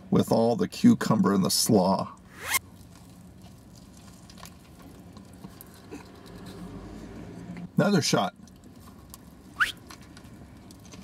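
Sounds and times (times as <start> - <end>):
faint chewing: 2.7 - 7.7.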